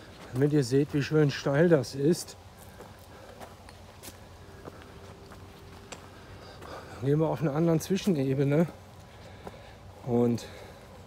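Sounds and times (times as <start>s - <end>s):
footsteps crunching on gravel: 0.0s - 10.9s.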